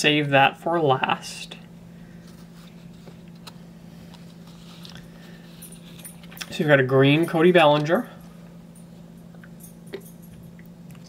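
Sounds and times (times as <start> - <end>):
steady low hum: 0.0 - 11.0
cards being shuffled: 2.2 - 6.5.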